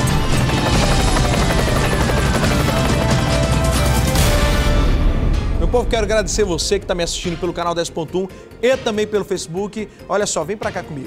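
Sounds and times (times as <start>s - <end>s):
helicopter rotor: 0.0s - 4.7s
dramatic intro music: 0.0s - 9.2s.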